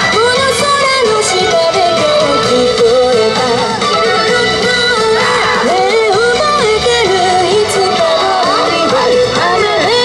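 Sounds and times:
dance music over loudspeakers: 0.0 - 10.0.

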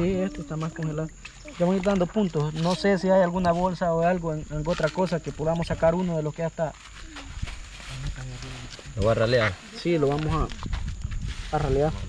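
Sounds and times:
man talking in low voice: 11.5 - 12.0.

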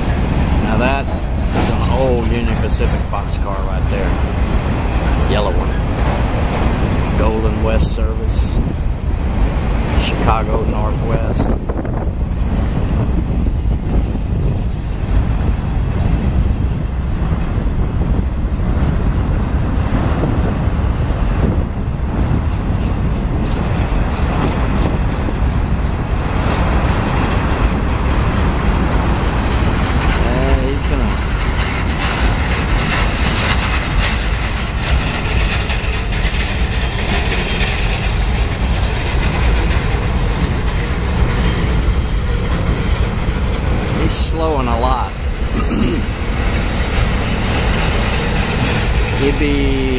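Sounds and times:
train wheels rumbling on rails: 0.0 - 49.9.

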